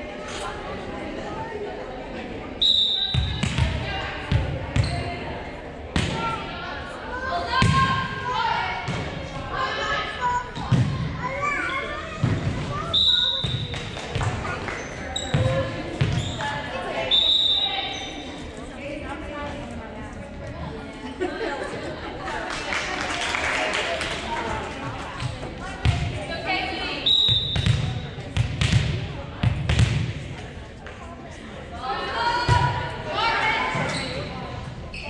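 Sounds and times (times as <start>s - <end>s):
voices of players and spectators: 0.0s - 35.0s.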